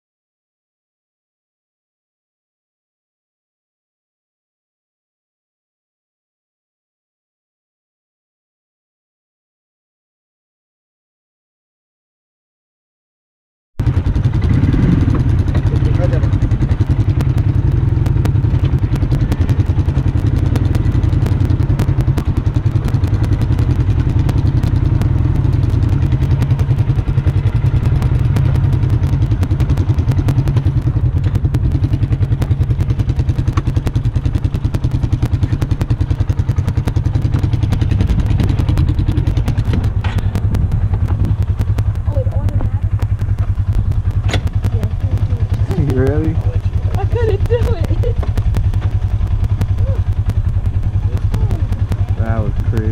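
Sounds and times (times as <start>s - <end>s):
vehicle engine idling: 13.8s - 52.9s.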